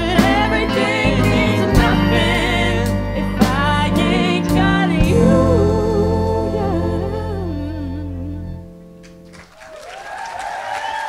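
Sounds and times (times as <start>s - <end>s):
wordless hummed vocal melody: 0.0s - 8.9s
sustained low notes: 1.1s - 9.0s.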